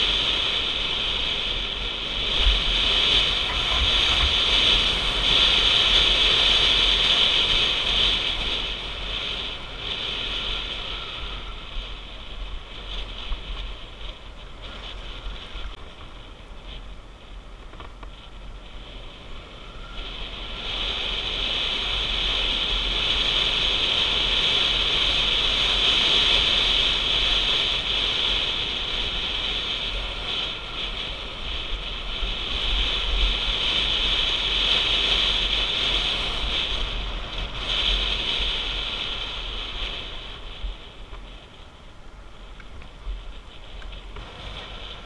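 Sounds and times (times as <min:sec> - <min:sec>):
motorcycle low rumble: 0:00.0 - 0:45.0
wind noise on camera: 0:00.0 - 0:45.0.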